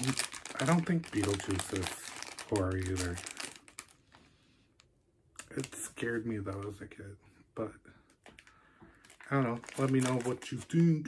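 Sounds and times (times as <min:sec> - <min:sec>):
packaging crinkling: 0:00.0 - 0:04.3, 0:08.2 - 0:11.0.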